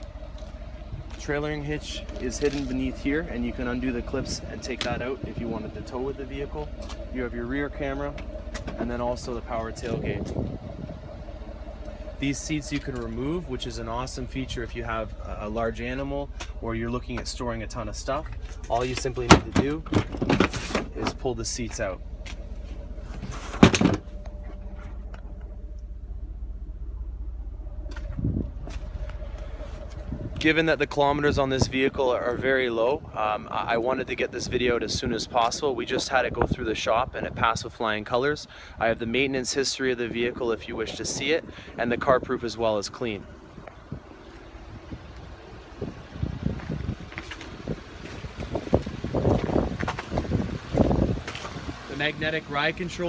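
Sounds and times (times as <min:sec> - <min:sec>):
steady low rumble: 0:00.0 - 0:53.0
wind buffeting microphone: 0:00.2 - 0:20.2, 0:26.8 - 0:39.2, 0:39.9 - 0:52.8
car seat clunk: 0:19.3 - 0:21.2, 0:23.2 - 0:24.9.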